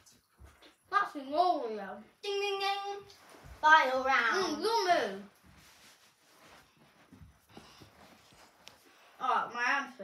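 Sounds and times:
footsteps on carpet: 0:03.1 - 0:04.2, 0:05.2 - 0:09.0.

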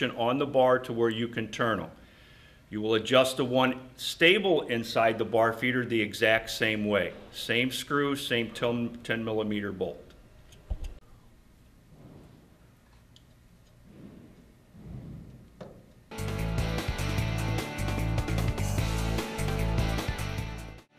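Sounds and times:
loud music with a beat: 0:16.2 - 0:20.8.

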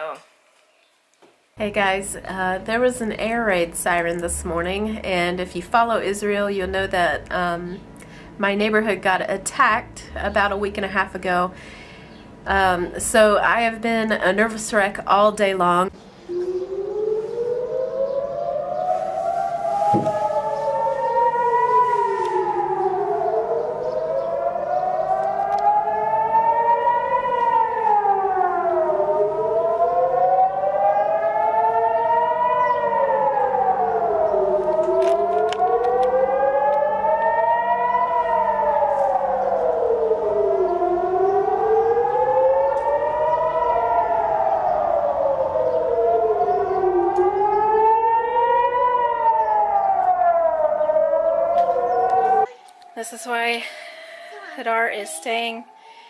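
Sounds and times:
air raid siren wailing: 0:01.6 - 0:56.0.

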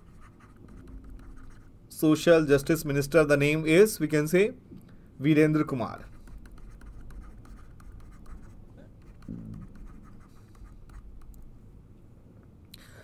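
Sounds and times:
stylus scratching on a tablet: 0:00.0 - 0:01.7, 0:05.9 - 0:11.3.

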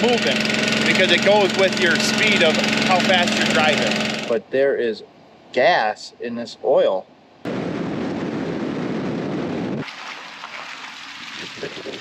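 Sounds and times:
road and tyre noise: 0:00.0 - 0:04.4
faint outdoor hiss: 0:04.3 - 0:07.5.

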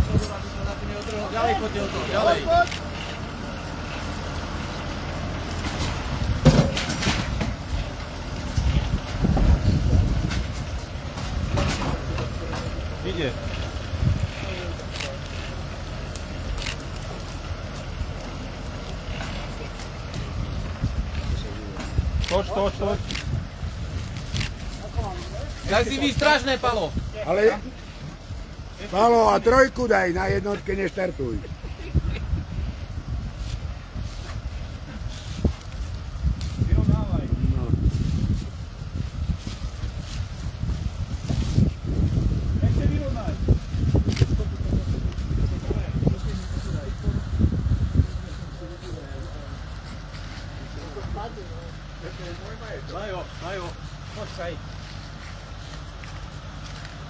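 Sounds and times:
tractor diesel engine under load: 0:00.0 - 0:57.0
wind buffeting microphone: 0:05.9 - 0:16.7, 0:17.5 - 0:49.8.

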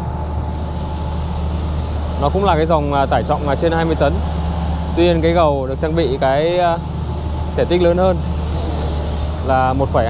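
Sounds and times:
excavator diesel engine running: 0:00.0 - 0:10.0
faint steady whine: 0:00.0 - 0:10.0.

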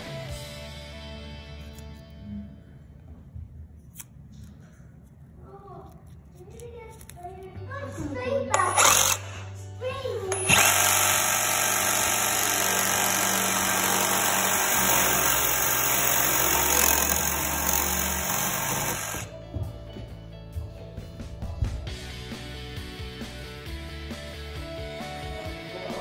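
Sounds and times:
reciprocating saw cutting metal: 0:10.3 - 0:19.3.

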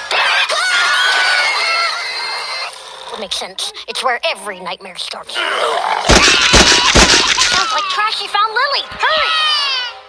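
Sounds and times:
girl screaming: 0:06.1 - 0:08.0, 0:09.0 - 0:10.0.

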